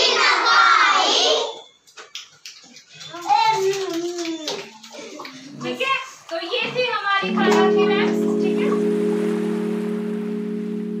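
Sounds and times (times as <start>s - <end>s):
sustained low chord: 7.2s - 11.0s.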